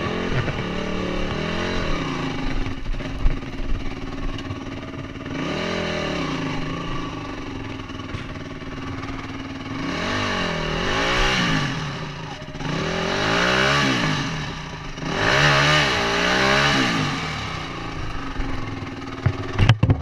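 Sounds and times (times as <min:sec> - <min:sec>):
motorcycle engine revving: 0:00.0 - 0:20.0
sharp knocks and clatter: 0:08.0 - 0:08.6, 0:19.2 - 0:20.0.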